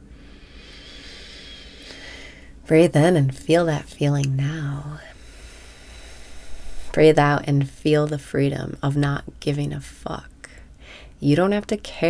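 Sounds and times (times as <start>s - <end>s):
woman breathing in deeply: 0.0s - 2.6s, 5.1s - 7.0s, 10.5s - 11.2s.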